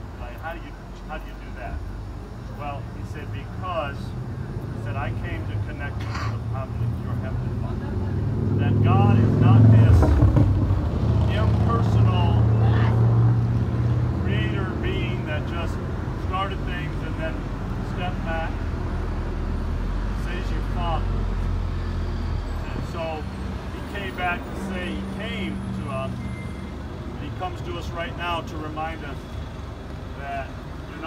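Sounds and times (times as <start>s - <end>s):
vehicle engine rumbling: 0.0s - 31.0s.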